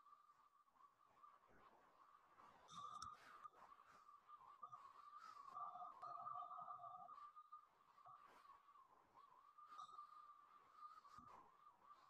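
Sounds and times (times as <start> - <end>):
faint steady high tone: 2.6 - 12.0.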